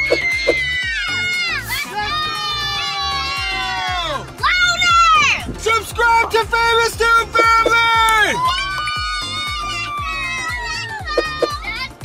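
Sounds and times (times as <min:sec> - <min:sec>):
girls shrieking with excitement: 0:00.0 - 0:05.4, 0:08.2 - 0:11.5
background music with low beat: 0:00.0 - 0:12.0.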